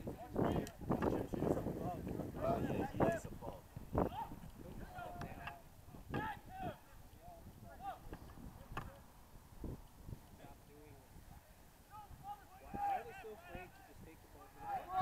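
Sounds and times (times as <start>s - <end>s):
distant players shouting: 4.0s - 8.3s, 11.8s - 15.0s.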